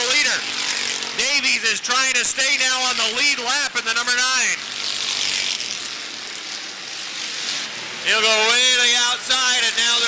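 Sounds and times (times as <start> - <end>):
racing car engines: 0.0 - 10.0.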